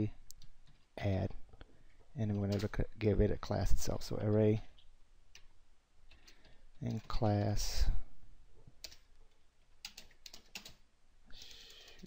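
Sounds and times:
faint keyboard typing: 0.3 - 1.0, 2.2 - 2.9, 4.2 - 7.6, 8.8 - 12.0.

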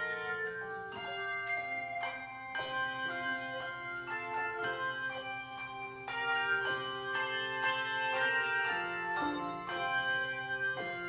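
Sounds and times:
handbell choir playing: 0.0 - 11.0.

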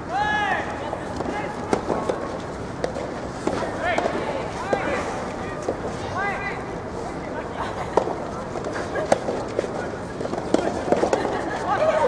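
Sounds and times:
distant voices: 0.0 - 12.0
open-air hubbub: 0.0 - 12.0
tennis balls being struck: 1.0 - 5.9, 7.9 - 11.8.

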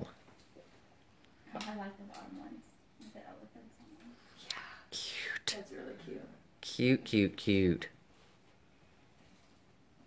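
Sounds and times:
whispered speech: 4.4 - 7.9.

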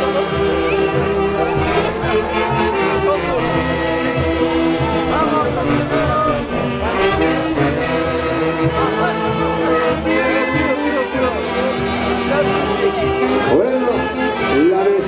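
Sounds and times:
folk orchestra playing dance music: 0.0 - 15.0
horns playing melody: 0.0 - 15.0.

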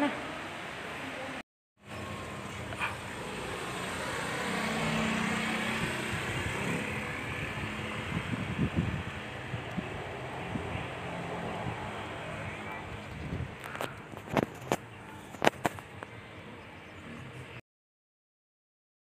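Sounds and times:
vehicle passing: 0.0 - 17.6.

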